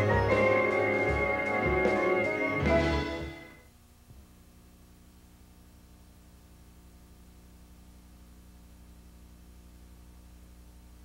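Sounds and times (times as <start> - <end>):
television theme music final chord: 0.0 - 3.7.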